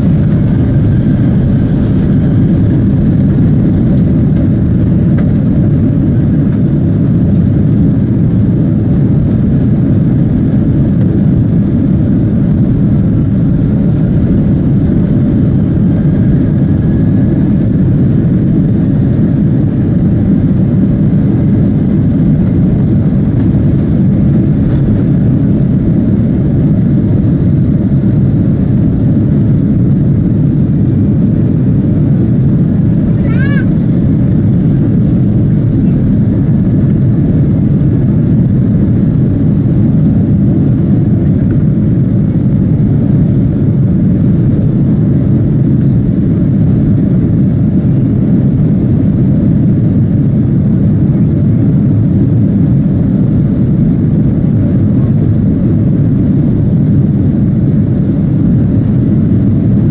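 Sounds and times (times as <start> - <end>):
faint rising whine: 0.0 - 6.9
jet engines rumbling in cabin: 0.0 - 59.9.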